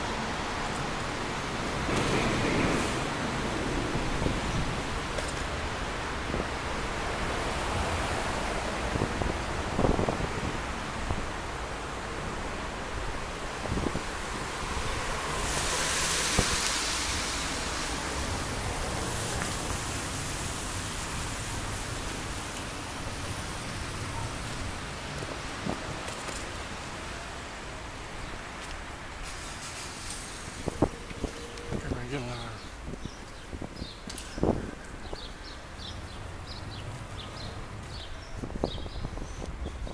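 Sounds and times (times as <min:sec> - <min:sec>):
outdoor street noise: 0:00.0 - 0:39.9
wind rumbling on microphone: 0:00.0 - 0:39.9
hiss: 0:14.9 - 0:22.7, 0:29.2 - 0:30.9.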